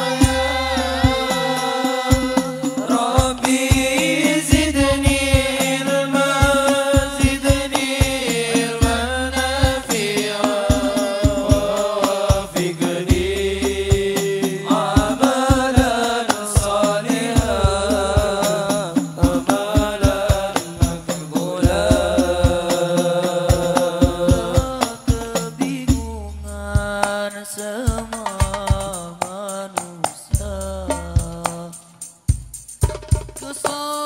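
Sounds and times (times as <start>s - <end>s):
men singing devotional song: 0.0s - 32.6s, 33.4s - 34.0s
hand drum beat: 0.0s - 34.0s.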